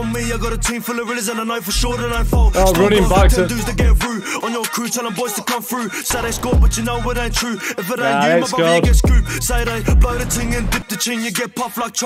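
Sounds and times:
man rapping over a beat: 0.0s - 12.0s.

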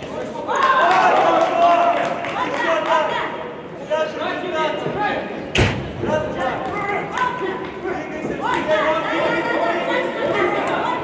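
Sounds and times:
voices calling out in a hall: 0.0s - 11.0s
loud sudden slam: 5.5s - 6.4s.

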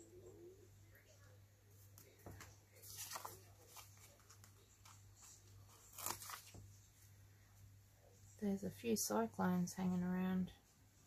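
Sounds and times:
low steady hum: 0.0s - 11.0s
paper rustling: 1.7s - 7.1s.

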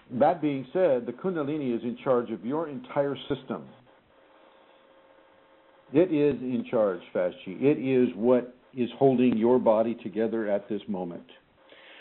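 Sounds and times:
man speaking: 0.0s - 3.8s, 5.9s - 11.4s
faint electrical hum: 0.0s - 12.0s.

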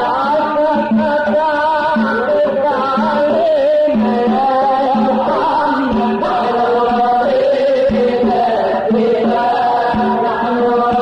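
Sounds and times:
man singing melismatically: 0.0s - 11.0s.

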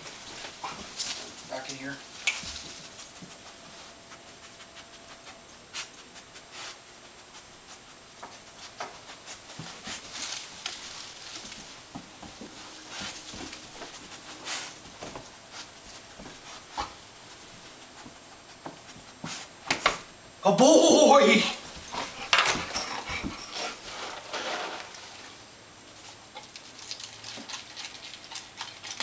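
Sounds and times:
dog sniffing: 0.0s - 19.6s, 21.6s - 25.3s
soft shuffling: 0.0s - 19.6s.

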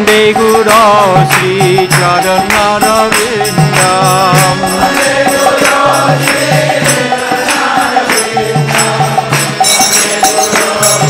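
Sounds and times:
drum beat: 0.0s - 11.0s
hand cymbals: 0.0s - 11.0s
group chanting: 2.4s - 11.0s.

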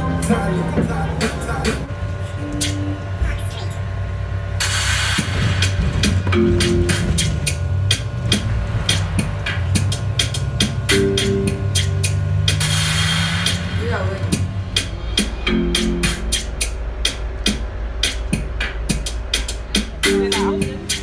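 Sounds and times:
hip hop music: 0.0s - 3.4s, 4.6s - 21.0s.

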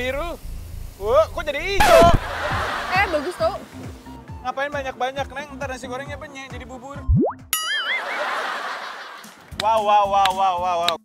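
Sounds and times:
noisy wash: 0.0s - 4.0s
wobbling boing: 7.1s - 8.0s.

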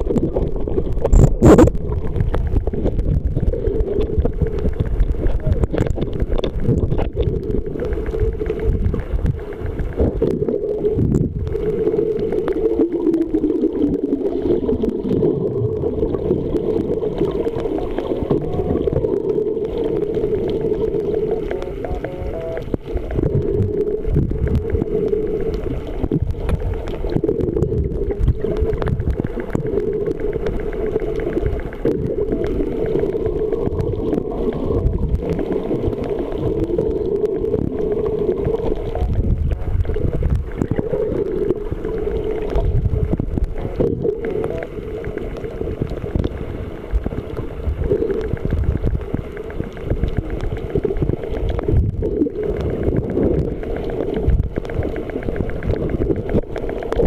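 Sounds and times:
low underwater pulses: 0.0s - 57.0s
underwater rumble of moving water: 0.0s - 57.0s
water bubbling: 0.0s - 57.0s.

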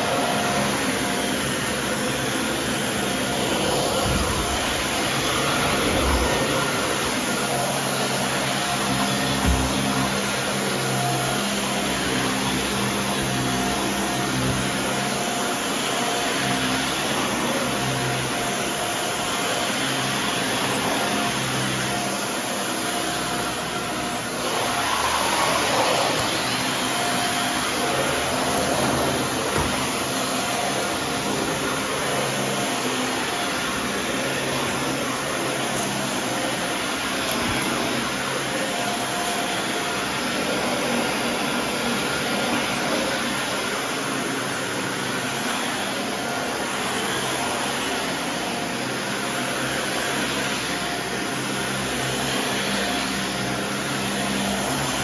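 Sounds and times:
vacuum cleaner on carpet: 0.0s - 55.0s.

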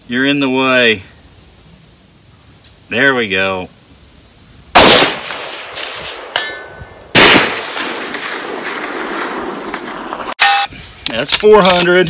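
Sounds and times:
rifle shot: 4.7s - 10.4s.

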